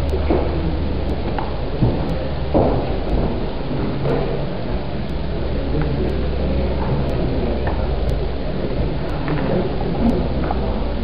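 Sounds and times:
room hum and hiss: 0:00.0 - 0:11.0.

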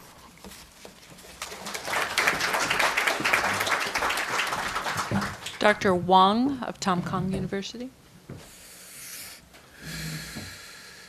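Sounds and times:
audience applauding: 0:01.4 - 0:05.8.

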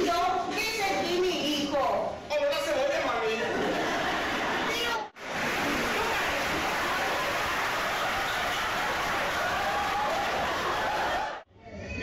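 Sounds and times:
audience applause: 0:05.2 - 0:11.4.

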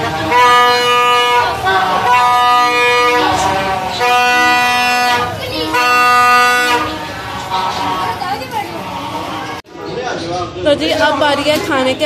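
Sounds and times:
plastic toy trumpets blasting: 0:00.1 - 0:07.0.

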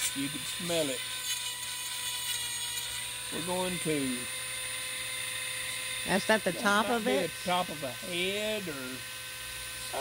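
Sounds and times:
bit grinding on wood: 0:00.0 - 0:10.0
rotary tool whining: 0:00.0 - 0:10.0.

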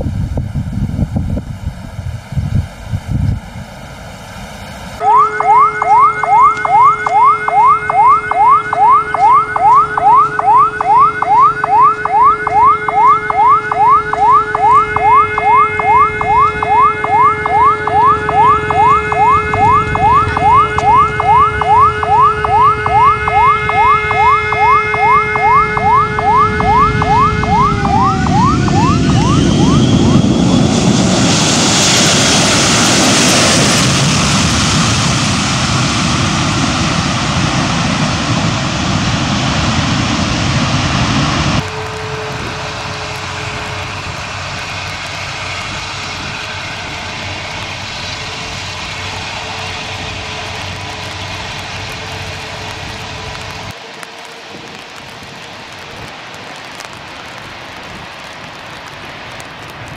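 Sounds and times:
steady jet engine rumble: 0:00.0 - 0:05.0, 0:24.0 - 0:59.9
airliner engine whine: 0:00.0 - 0:59.9
fast rising wail: 0:05.0 - 0:33.7
loud jet roar: 0:05.0 - 0:53.6.

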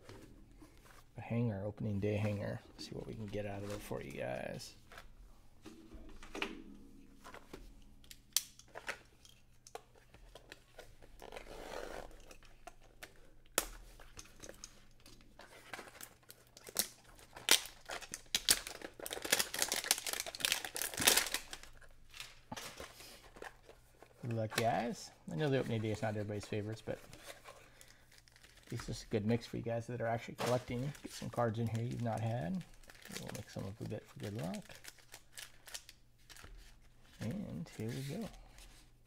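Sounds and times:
cardboard tearing and crinkling: 0:15.4 - 0:22.9.

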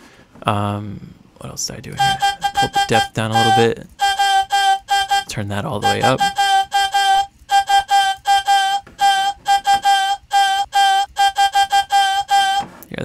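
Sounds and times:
staccato synth vocal sample: 0:02.0 - 0:12.7.

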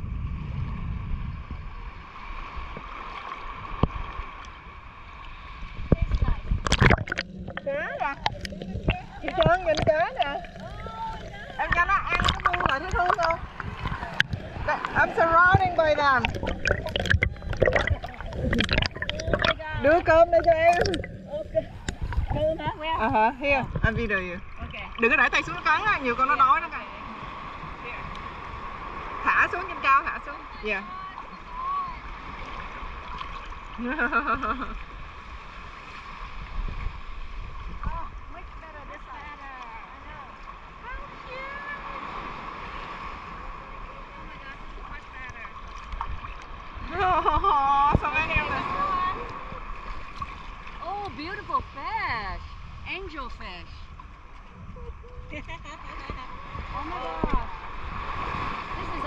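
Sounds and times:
wind on microphone: 0:00.0 - 0:02.9, 0:05.4 - 0:30.9, 0:33.8 - 0:39.4, 0:45.9 - 0:59.0
water sloshing and gurgling: 0:00.0 - 0:59.0
water clicks on microphone: 0:05.9 - 0:22.4.

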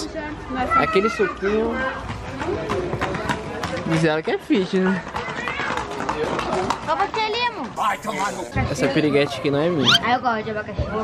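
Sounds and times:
people talking: 0:07.8 - 0:11.0.

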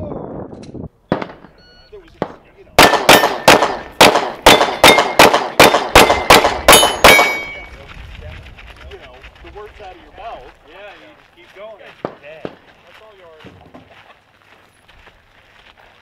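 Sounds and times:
pistol shots: 0:01.1 - 0:01.5, 0:02.2 - 0:07.6
steel targets ringing: 0:04.4 - 0:07.7.

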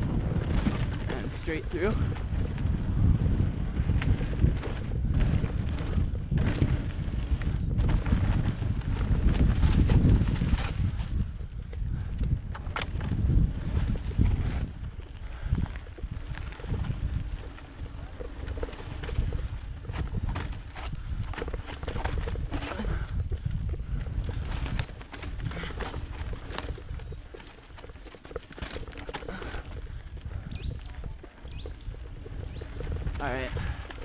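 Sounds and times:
bike rattling over bumps: 0:00.0 - 0:34.0
bike tyres rumbling on dirt: 0:00.0 - 0:34.0.

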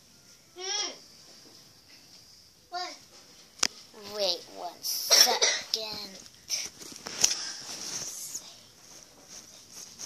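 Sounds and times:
child coughing: 0:05.0 - 0:05.8.

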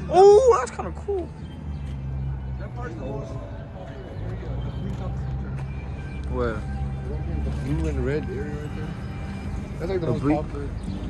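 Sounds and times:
faint voices: 0:00.0 - 0:11.0
low rumble of street traffic: 0:00.0 - 0:11.0.

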